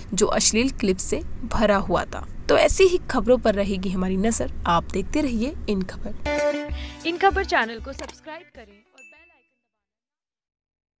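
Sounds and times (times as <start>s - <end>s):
voice: 0.0s - 6.2s, 6.8s - 9.5s.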